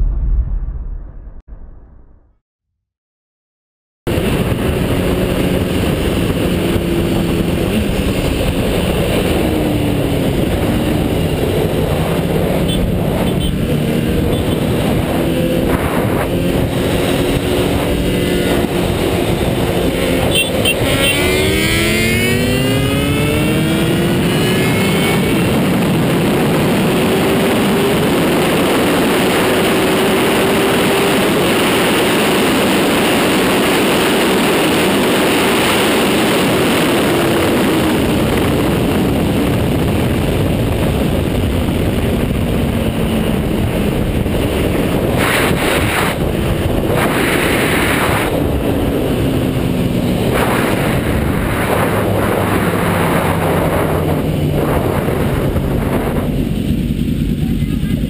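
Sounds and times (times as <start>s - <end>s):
loud wind rush: 0.0s - 1.8s, 4.1s - 58.0s
motorcycle engine pulling hard: 4.1s - 58.0s.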